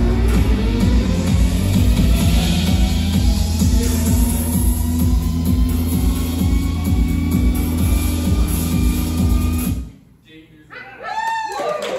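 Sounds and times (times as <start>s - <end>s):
electronic music with kick drum: 0.0s - 10.0s.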